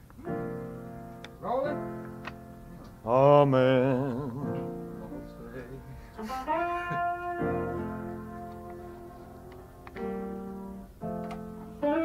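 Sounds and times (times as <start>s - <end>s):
band holding notes and chords: 3.7s - 12.0s.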